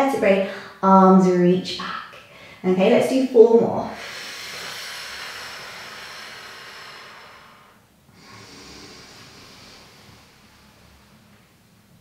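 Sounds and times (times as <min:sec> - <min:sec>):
woman breathing with effort: 0:02.3 - 0:02.6, 0:04.0 - 0:11.3.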